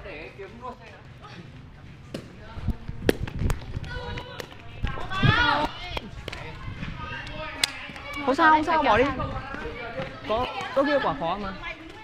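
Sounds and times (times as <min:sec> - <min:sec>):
quick footsteps on court: 0:07.6 - 0:12.0.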